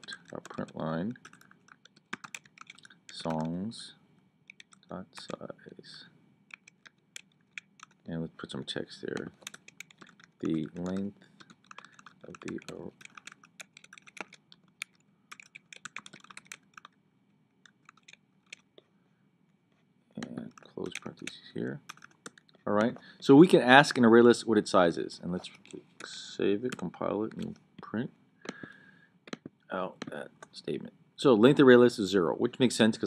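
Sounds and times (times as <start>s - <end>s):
keyboard typing: 0.0s - 3.6s, 4.5s - 5.4s, 6.5s - 8.1s, 9.0s - 17.0s, 17.6s - 18.7s, 20.2s - 22.9s.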